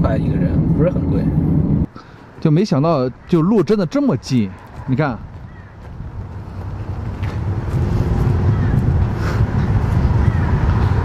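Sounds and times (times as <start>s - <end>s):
car approaching on road: 5.3s - 11.0s.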